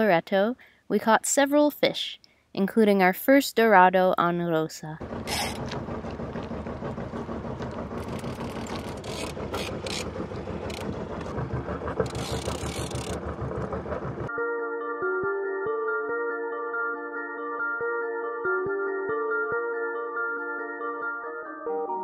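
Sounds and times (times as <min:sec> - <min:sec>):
rapid mechanical clicking: 0:05.0 - 0:14.3
soft mallet-toned music: 0:14.3 - 0:22.0.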